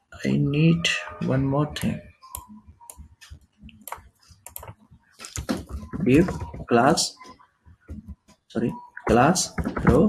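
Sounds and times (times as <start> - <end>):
typing on computer keyboard: 2.4 - 6.7.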